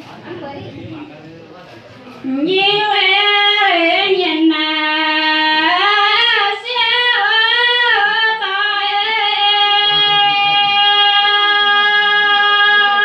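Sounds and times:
woman singing unaccompanied: 2.2s - 13.0s.

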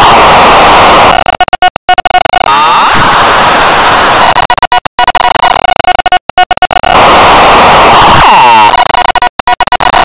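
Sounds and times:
choppy stuttering: 0.0s - 10.0s
harsh distorted noise: 0.0s - 10.0s.

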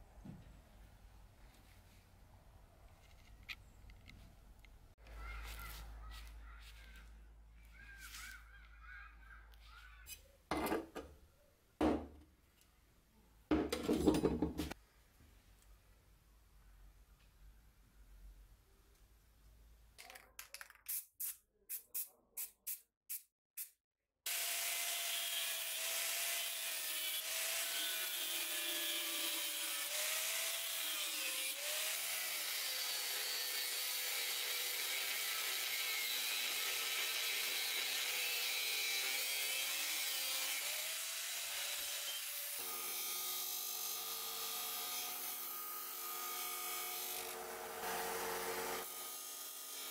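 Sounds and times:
spray-paint can hissing: 20.8s - 23.7s
angle grinder cutting steel: 24.3s - 49.9s.

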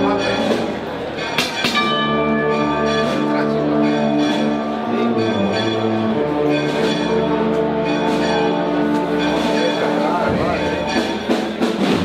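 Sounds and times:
wind band playing a march: 0.0s - 0.9s, 1.7s - 12.0s
sharp percussion strikes: 0.0s - 12.0s.

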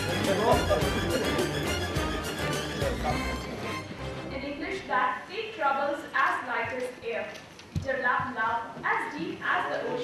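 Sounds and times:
woman speaking into a microphone: 4.3s - 10.0s.

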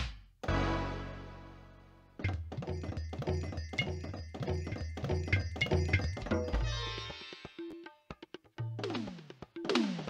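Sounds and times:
electronic percussion hits: 2.2s - 7.0s.

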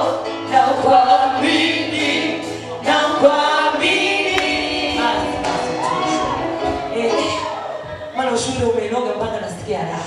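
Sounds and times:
congregation singing: 0.0s - 8.1s.

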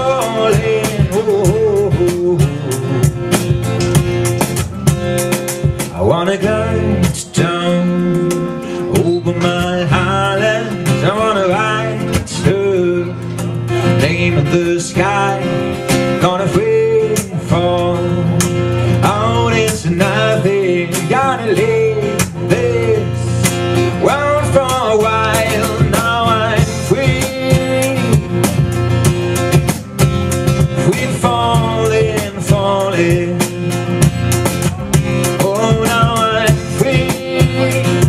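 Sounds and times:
man singing: 0.0s - 3.7s, 5.6s - 28.8s, 30.4s - 38.0s
box drum beats: 0.0s - 38.0s
strummed acoustic guitar: 0.0s - 38.0s.

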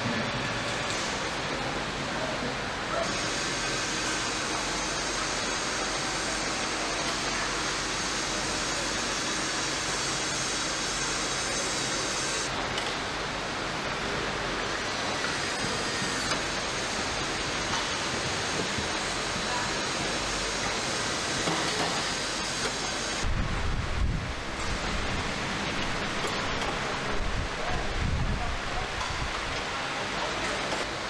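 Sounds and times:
machinery and ventilation hum: 0.0s - 31.0s.

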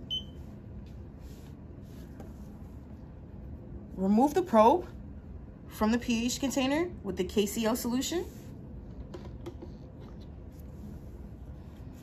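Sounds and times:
low room hum: 0.0s - 12.0s
short electronic beep: 0.1s - 0.4s.

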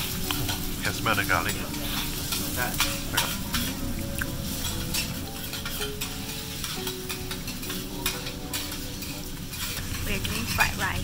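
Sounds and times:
food sizzling on a griddle: 0.0s - 11.0s
metal spatula scraping and tapping: 1.7s - 10.8s.

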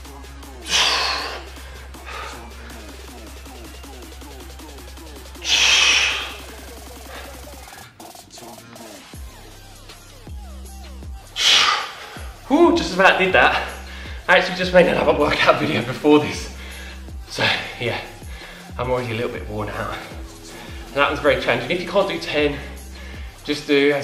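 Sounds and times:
background music: 0.0s - 24.0s
man exhaling heavily: 0.6s - 2.9s, 5.4s - 7.4s, 11.4s - 12.3s.

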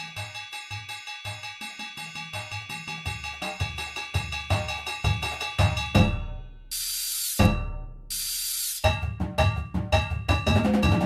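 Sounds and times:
steam-like hissing bursts: 6.7s - 7.4s, 8.1s - 8.9s.

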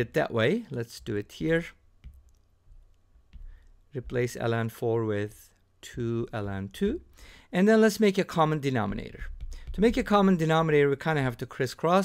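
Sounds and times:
stylus tapping tablet screen: 0.9s - 7.2s, 8.0s - 11.4s.

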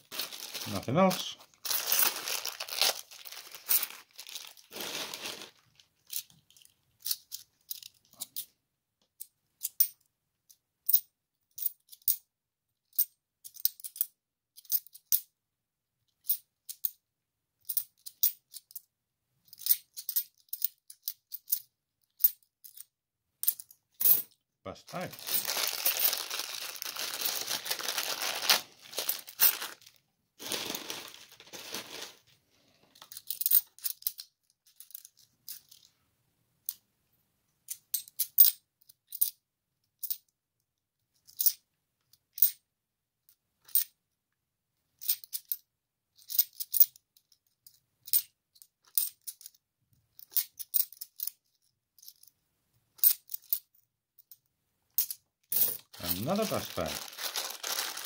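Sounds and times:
plastic bag crinkling: 0.0s - 6.1s, 24.9s - 33.0s, 55.8s - 58.0s.

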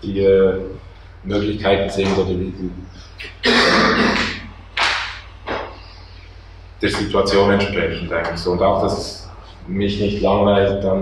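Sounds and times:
man's rough vocal noise: 3.0s - 4.6s.

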